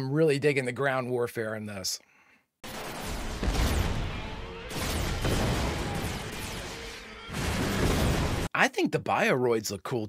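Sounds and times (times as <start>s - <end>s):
cartoon weapons fire and blasts: 2.6s - 8.5s.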